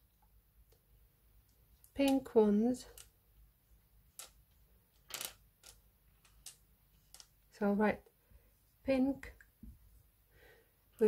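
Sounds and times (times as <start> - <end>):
plastic cubes clicking together: 5.0 - 7.3.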